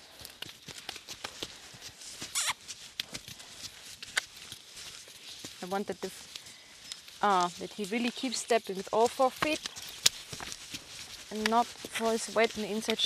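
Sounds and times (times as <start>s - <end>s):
footsteps on sand: 0.0s - 13.0s
horse hooves on sand: 0.0s - 13.0s.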